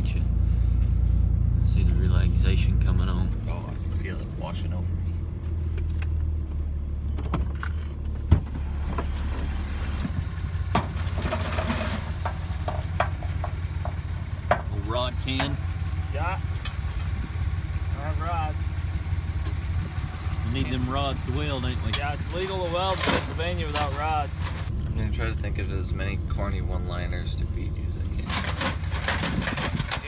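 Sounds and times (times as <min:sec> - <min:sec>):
engine idling: 0:00.0 - 0:30.0.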